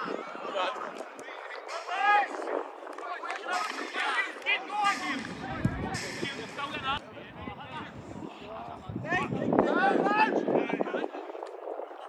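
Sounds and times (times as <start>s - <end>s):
players calling: 0.0s - 7.0s.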